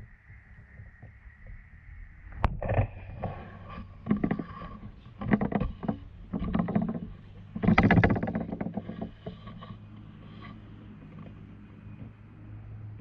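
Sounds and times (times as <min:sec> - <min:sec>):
knocks: 0:05.2 - 0:09.6.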